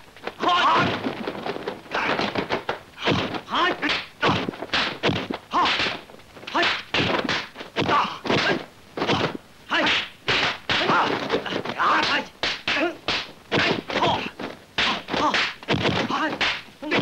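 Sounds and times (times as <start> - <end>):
punch and kick impacts: 0.3 - 17.0
fighters shouting and grunting: 0.4 - 1.1, 1.9 - 4.6, 5.2 - 17.0.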